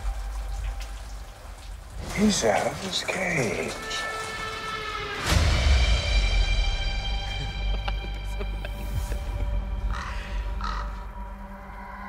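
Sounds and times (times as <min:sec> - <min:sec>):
low dark music drone: 0:03.7 - 0:12.0
raven cawing: 0:09.4 - 0:12.0.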